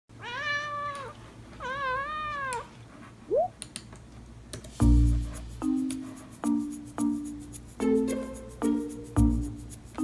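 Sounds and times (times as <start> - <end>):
cat meowing: 0.2 - 2.7.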